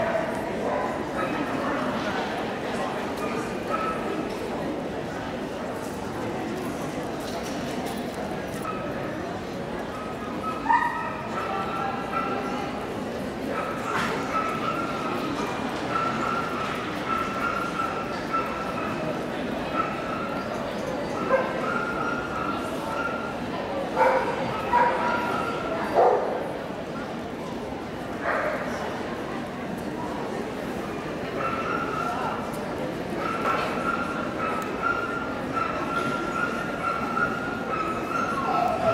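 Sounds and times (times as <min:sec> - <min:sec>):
murmur of crowd chatter: 0:00.0 - 0:38.9.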